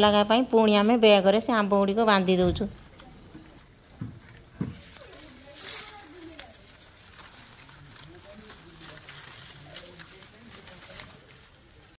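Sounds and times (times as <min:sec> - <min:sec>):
faint low voices: 0:00.0 - 0:11.9
leaves rustling: 0:00.0 - 0:11.9
soft knocks: 0:02.4 - 0:04.9
plastic net bag rustling: 0:02.6 - 0:11.9.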